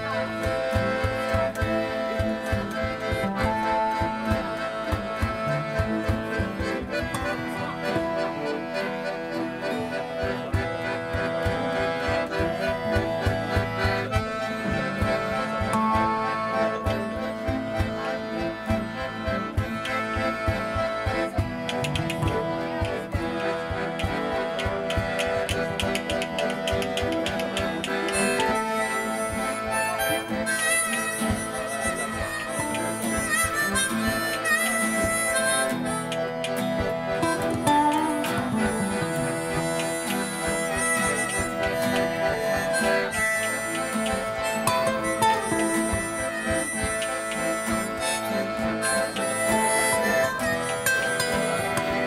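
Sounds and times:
acoustic guitar: 0.0s - 52.0s
harmonica melody: 0.0s - 52.0s.

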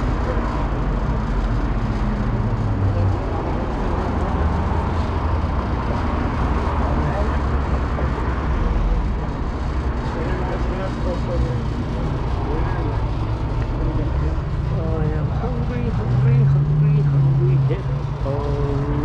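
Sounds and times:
indistinct voices: 0.0s - 19.0s
road traffic rumble: 0.0s - 19.0s.

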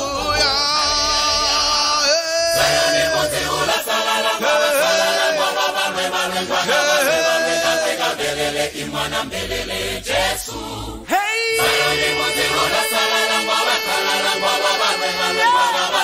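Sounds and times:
mixed choir singing in harmony: 0.0s - 16.0s.

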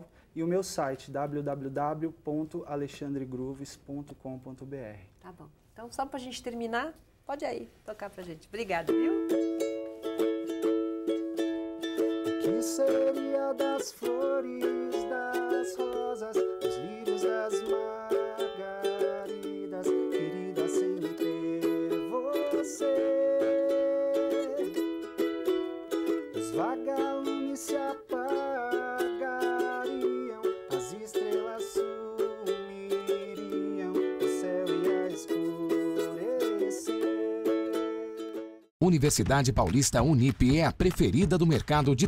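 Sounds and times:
ukulele strumming chords: 8.9s - 38.7s.

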